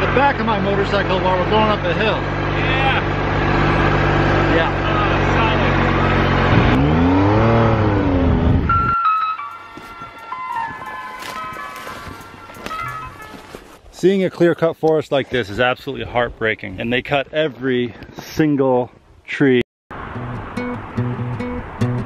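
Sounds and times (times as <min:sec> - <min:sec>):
quiet music: 0:08.8 - 0:13.7.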